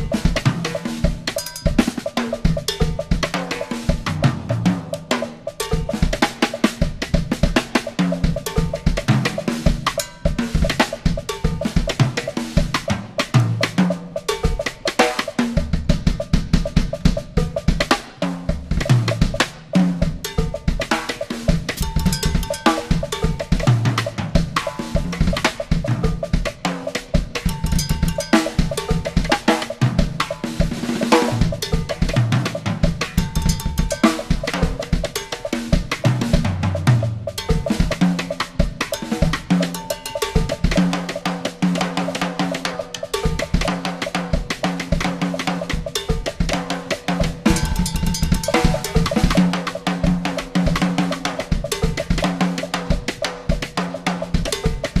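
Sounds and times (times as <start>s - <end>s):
drum kit played with sticks: 0.0s - 55.0s.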